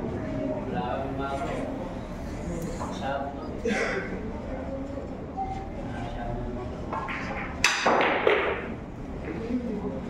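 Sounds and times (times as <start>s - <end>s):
pool balls colliding: 6.9s - 8.8s.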